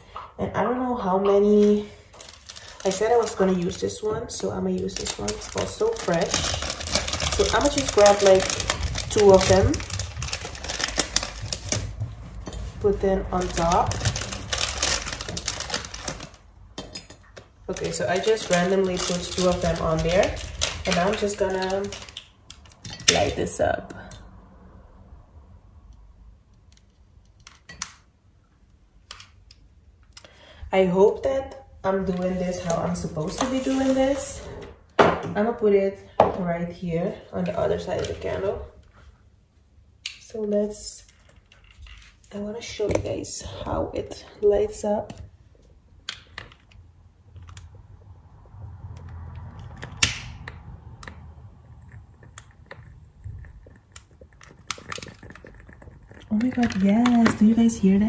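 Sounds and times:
candle wick crackling: 0:01.6 - 0:12.0, 0:12.6 - 0:16.5, 0:17.6 - 0:23.4, 0:48.9 - 0:58.0.

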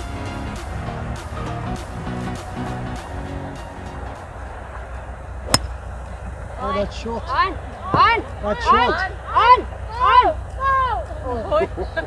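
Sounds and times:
background music with steady beat: 0:00.0 - 0:06.5
golf club striking ball: 0:05.4 - 0:06.2.

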